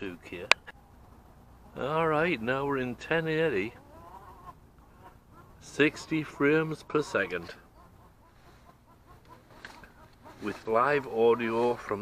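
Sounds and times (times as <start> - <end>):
hens clucking softly: 0.7 - 12.0.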